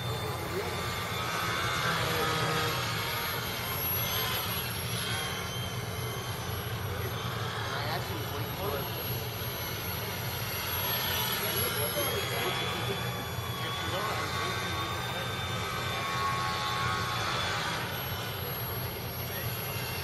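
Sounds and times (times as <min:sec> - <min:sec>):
model plane motor whining: 0:00.0 - 0:20.0.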